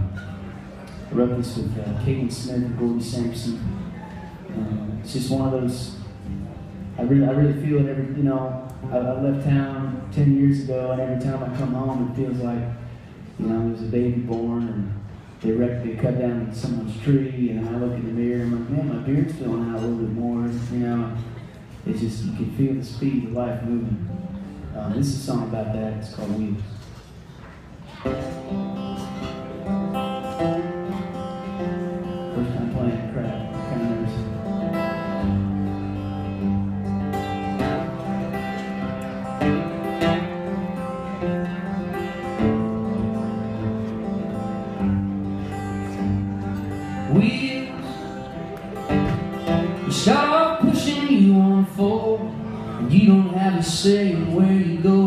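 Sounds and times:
acoustic guitars playing: 0:00.0 - 0:55.0.

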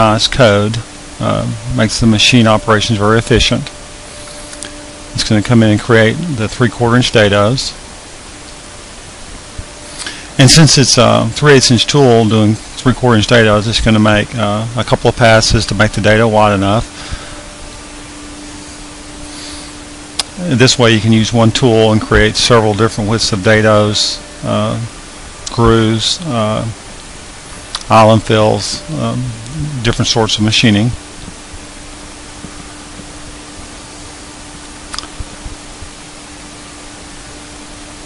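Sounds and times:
brief click: 0:34.9 - 0:35.2.

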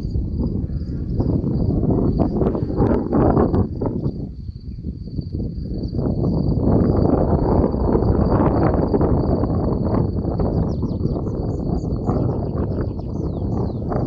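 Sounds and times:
wind buffeting microphone: 0:00.0 - 0:14.0.

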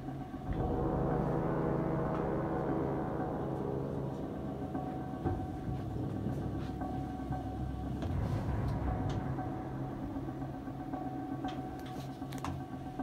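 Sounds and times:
low hum and rumble: 0:00.0 - 0:13.0.

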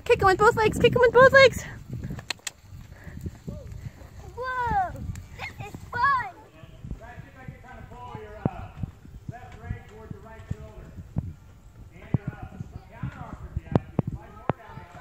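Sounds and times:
quiet talking: 0:00.7 - 0:15.0
horse hoofbeats on dirt: 0:07.0 - 0:15.0.

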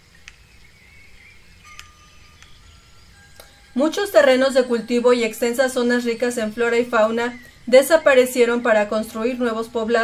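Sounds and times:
high chime-like tinkling: 0:01.5 - 0:07.6.

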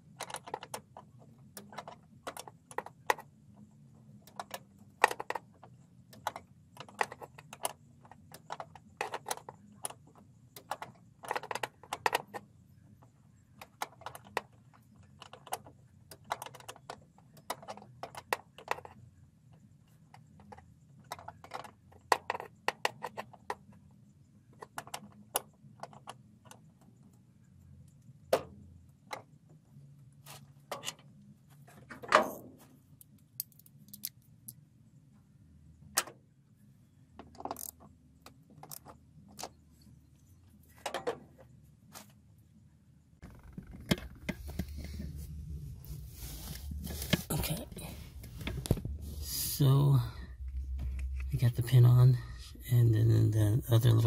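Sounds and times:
rustling handling noise: 0:43.2 - 0:51.9.

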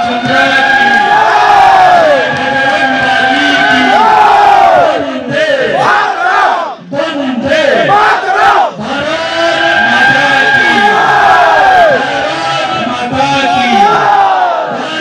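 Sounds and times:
crowd shouting: 0:00.0 - 0:15.0
man shouting over loudspeaker: 0:00.0 - 0:15.0.

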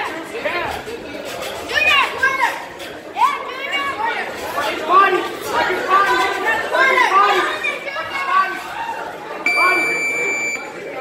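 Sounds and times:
timer buzzer high-pitched tone: 0:09.5 - 0:10.7.

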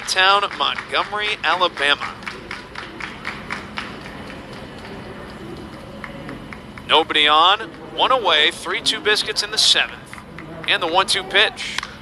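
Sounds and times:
low crowd murmur: 0:00.0 - 0:12.0
spectators clapping: 0:00.0 - 0:12.0.

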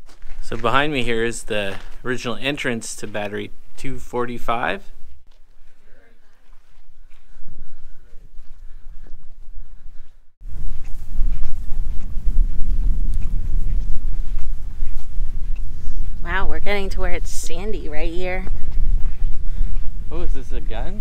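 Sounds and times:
gusty wind buffeting microphone: 0:10.4 - 0:21.0.

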